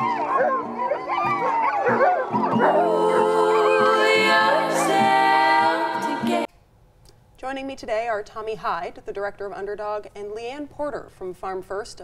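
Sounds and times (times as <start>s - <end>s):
dogs howling: 0.0s - 5.7s
background music: 0.0s - 6.5s.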